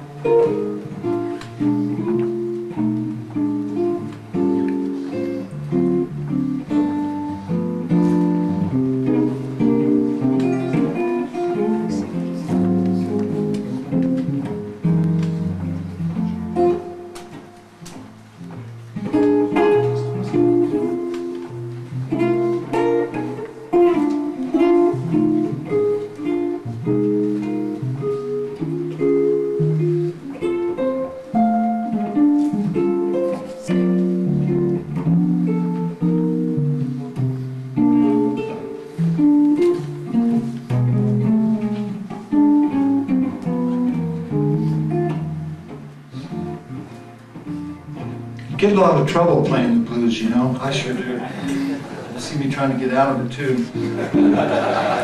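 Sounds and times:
fingerstyle guitar playing: 0.0 - 55.0.

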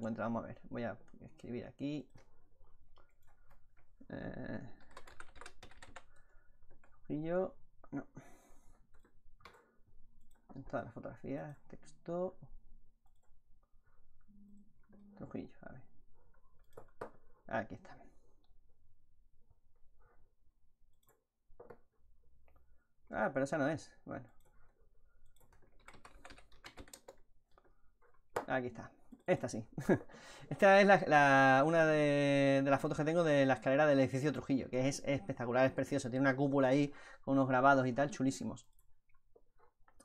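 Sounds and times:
faint typing on keyboard: 0.0 - 18.8, 19.4 - 40.0
typing on computer keyboard: 4.6 - 7.0, 16.5 - 17.3, 24.4 - 28.5.

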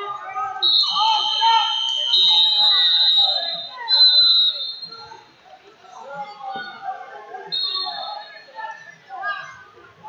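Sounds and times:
crowd voices and shouting: 0.0 - 10.0.

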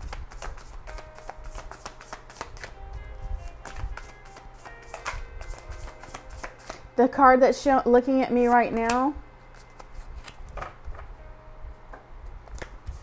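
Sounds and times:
cards being shuffled: 0.0 - 2.8, 3.5 - 6.8, 9.5 - 10.8, 12.4 - 13.0
quiet background music: 0.0 - 13.0.

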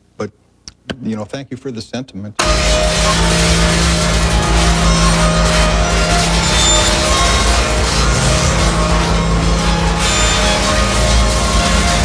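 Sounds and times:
harsh noise hiss: 2.4 - 12.0
pulsing low rumble: 2.4 - 12.0
steady droning tones: 2.4 - 12.0.

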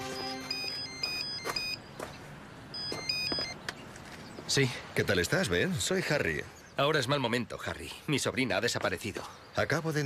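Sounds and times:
background music: 0.0 - 1.2
electronic telephone ringing: 0.0 - 1.8, 2.7 - 3.6.

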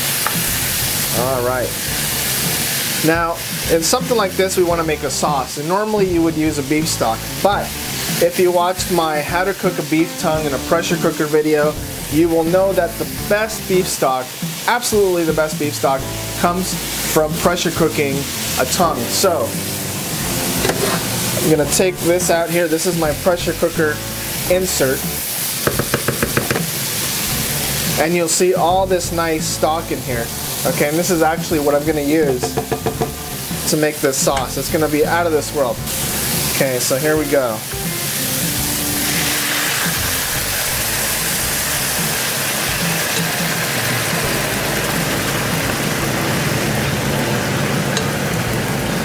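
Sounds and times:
food sizzling in pan: 0.0 - 49.0
wooden spatula knocking on pan: 20.6 - 21.0, 25.6 - 26.8, 32.3 - 33.3.

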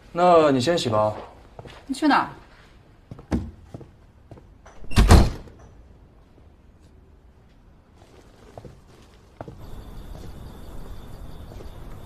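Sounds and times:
door closing with thud: 4.8 - 5.6.

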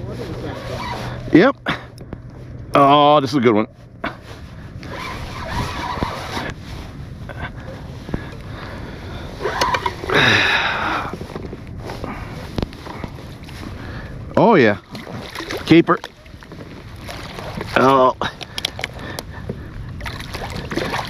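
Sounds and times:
water moving: 0.0 - 21.0.

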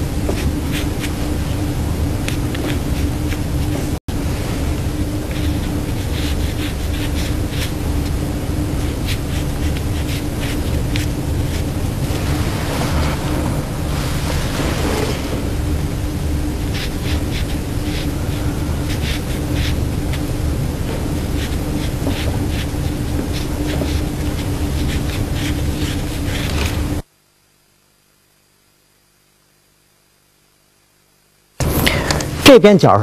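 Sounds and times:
low background hum: 0.0 - 33.0
brush scratching on paper: 0.3 - 1.6, 4.7 - 27.0.

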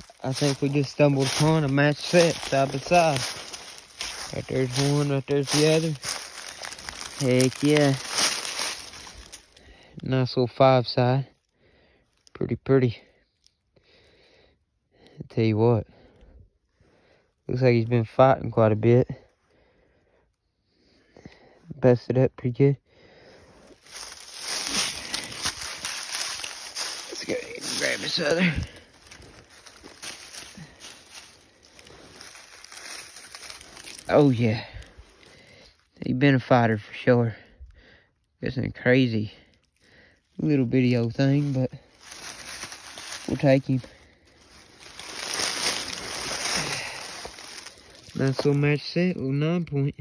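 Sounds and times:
footsteps crunching through dry leaves: 0.0 - 9.9, 23.6 - 36.5, 39.6 - 49.2.

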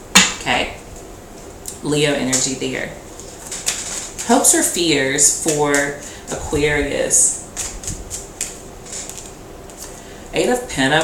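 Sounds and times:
cards rustling: 2.3 - 4.6, 7.5 - 10.0.

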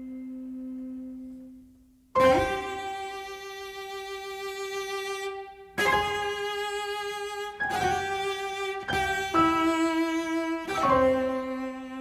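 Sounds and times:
piano note ringing: 2.2 - 3.5.

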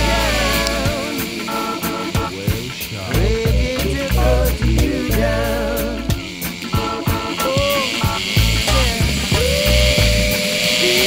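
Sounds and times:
background song with bass line: 0.0 - 11.0.

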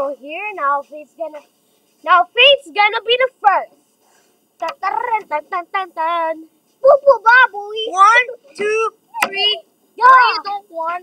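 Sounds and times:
child speaking: 0.0 - 1.4, 2.0 - 3.8, 4.6 - 11.0.

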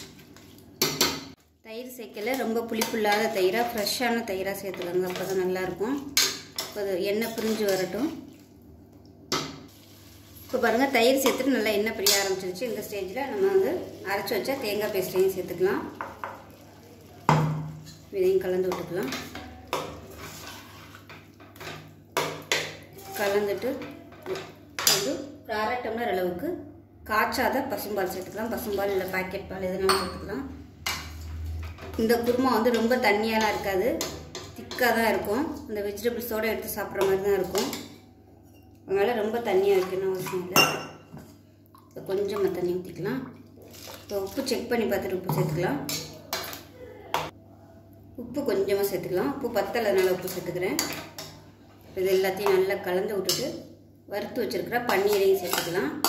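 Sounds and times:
spoon stirring thick curry: 2.2 - 8.6, 9.8 - 24.9
ladle scraping a steel pot: 19.0 - 21.8
metal spoon clinking on pot: 54.9 - 55.8.

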